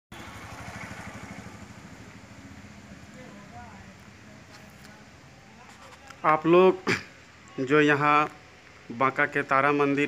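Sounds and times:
engine idling: 0:00.1 - 0:07.6.

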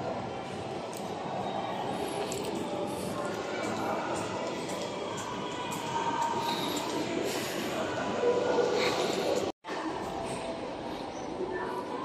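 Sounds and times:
distant voices or music: 0:00.0 - 0:12.0
shopping mall ambient hum: 0:00.0 - 0:12.0.

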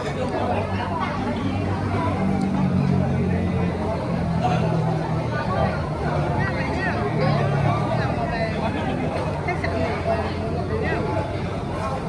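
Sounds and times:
babble of diners talking: 0:00.0 - 0:12.0.

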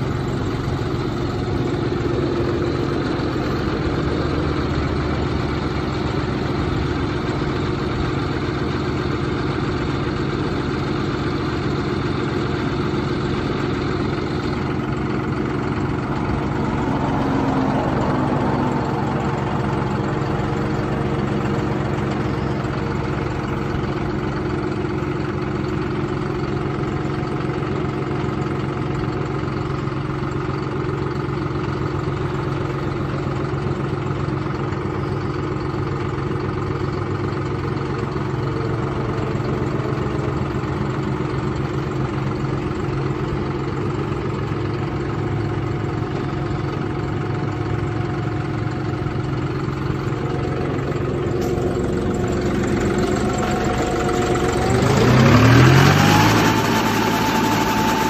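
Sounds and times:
tractor diesel engine idling and revving: 0:00.0 - 0:58.0.

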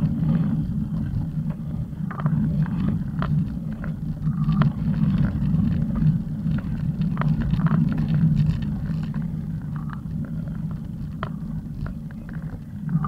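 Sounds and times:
steady low rumble: 0:00.0 - 0:13.0.

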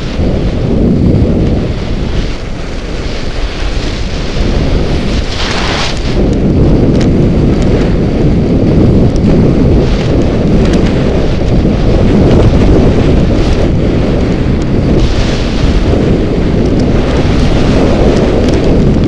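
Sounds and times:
skis scraping on snow: 0:00.0 - 0:19.0
wind buffeting microphone: 0:00.0 - 0:19.0.

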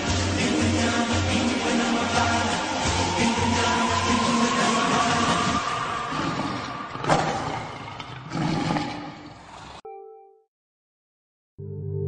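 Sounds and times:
dense noisy rush: 0:00.0 - 0:07.1.

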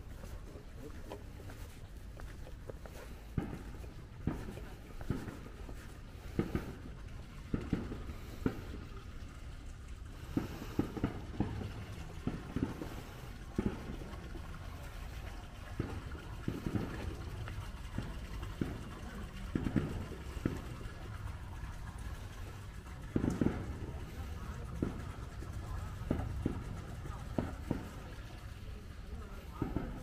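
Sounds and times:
footsteps on stone paving: 0:00.0 - 0:08.8
low background rumble: 0:00.0 - 0:30.0.

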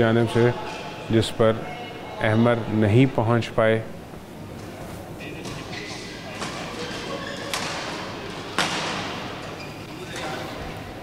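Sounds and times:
racket hitting shuttlecock: 0:07.5 - 0:09.4.

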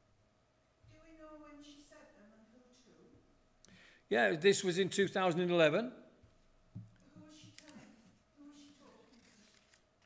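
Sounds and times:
paper sheets handled: 0:08.7 - 0:09.8.

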